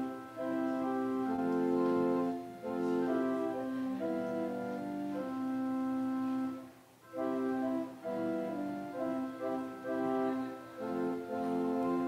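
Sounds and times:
church organ chords: 0:00.0 - 0:12.0.

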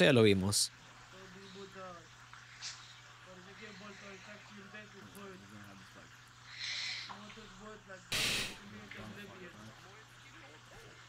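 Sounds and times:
short breathy hiss: 0:06.4 - 0:07.2, 0:08.1 - 0:08.7.

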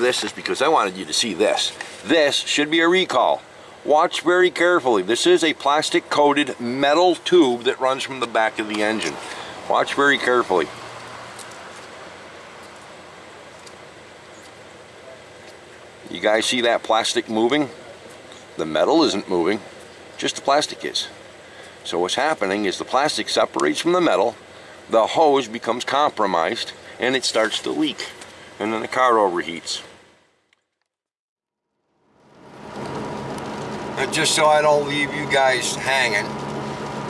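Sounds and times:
faint background hiss: 0:00.0 - 0:30.5.

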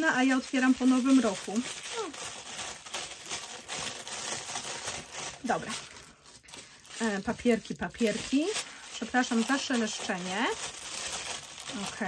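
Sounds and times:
paper wrappers rustling: 0:00.0 - 0:12.0.

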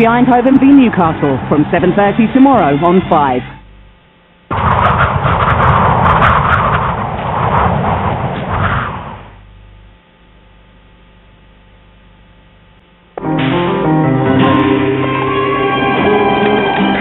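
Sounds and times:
faint low hum: 0:00.0 - 0:13.2.

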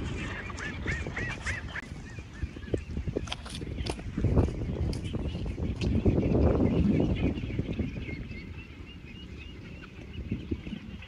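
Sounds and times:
ducks calling: 0:00.0 - 0:02.9.

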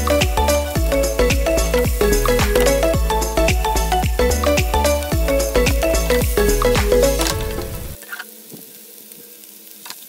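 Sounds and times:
food sizzling in a frying pan: 0:08.0 - 0:10.0.

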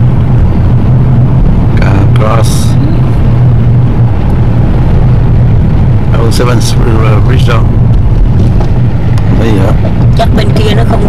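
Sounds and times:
car interior road rumble: 0:00.0 - 0:11.0.

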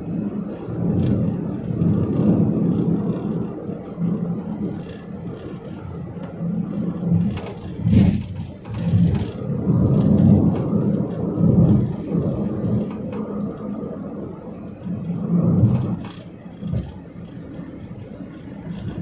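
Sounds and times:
road vehicle running noise: 0:00.0 - 0:19.0
wind buffeting microphone: 0:00.0 - 0:19.0.

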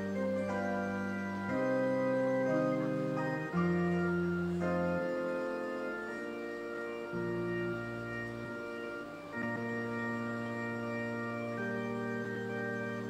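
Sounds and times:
organ playing slow chords: 0:00.0 - 0:13.0.

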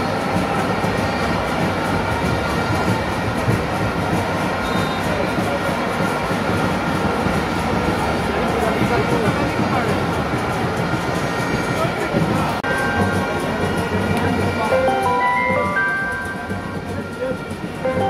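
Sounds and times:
stadium crowd roaring: 0:00.0 - 0:18.0.

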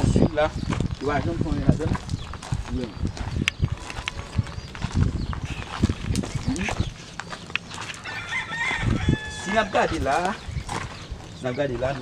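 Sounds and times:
footsteps through brush: 0:00.0 - 0:12.0.

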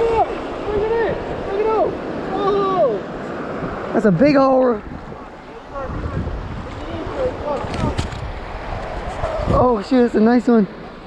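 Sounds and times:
surf washing over sand: 0:00.0 - 0:11.0
wind buffeting microphone: 0:00.0 - 0:11.0.

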